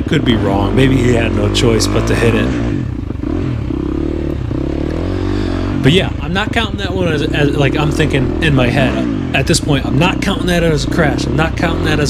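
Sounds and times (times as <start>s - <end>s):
dirt bike engine at low revs: 0.0s - 12.0s.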